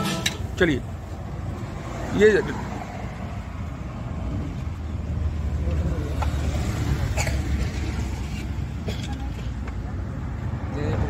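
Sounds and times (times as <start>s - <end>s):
road traffic: 0.0s - 11.0s.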